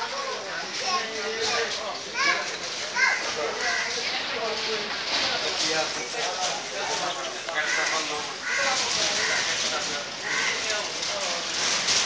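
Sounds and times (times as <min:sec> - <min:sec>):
street background noise: 0:00.0 - 0:12.0
indistinct voices talking: 0:00.1 - 0:12.0.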